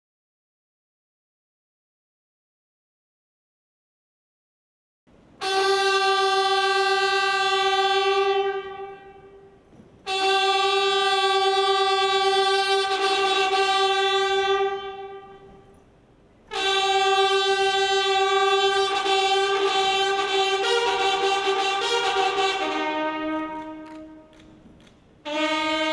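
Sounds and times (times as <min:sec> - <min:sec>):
brass instrument long notes: 0:05.2 - 0:15.8, 0:16.4 - 0:24.5, 0:25.2 - 0:25.9
other instrument notes: 0:05.3 - 0:25.9.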